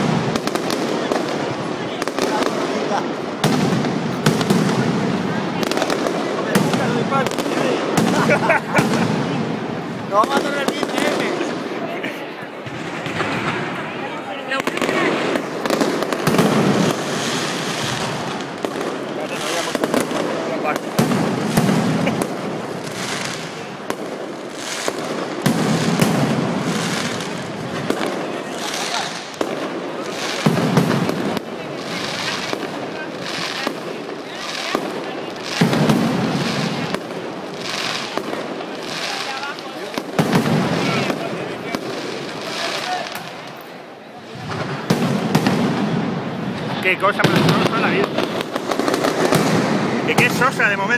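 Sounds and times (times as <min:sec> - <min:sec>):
firecrackers banging: 0:00.0 - 0:50.9
deep blasts: 0:44.3 - 0:50.9.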